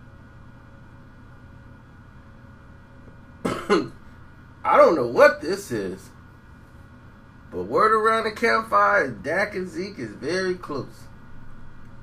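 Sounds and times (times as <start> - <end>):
faint room hiss: 0.0 - 12.0
man coughing: 3.4 - 4.1.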